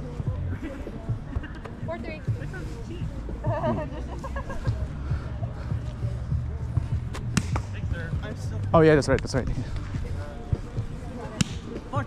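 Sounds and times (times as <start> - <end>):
outdoor background noise: 0.0 - 12.0
sharp slap: 7.1 - 7.7, 11.4 - 11.8.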